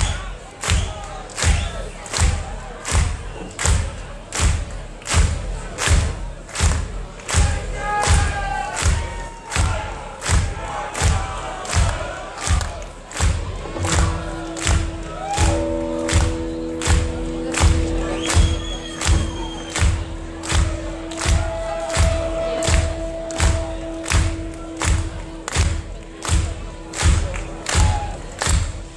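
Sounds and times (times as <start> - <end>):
bass drum steady beat: 0.0 - 28.9
band held chord: 13.6 - 28.4.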